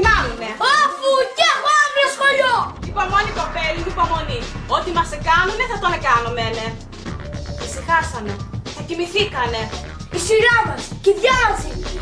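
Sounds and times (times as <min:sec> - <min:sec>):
child talking: 0:00.0 - 0:02.8, 0:08.8 - 0:11.9.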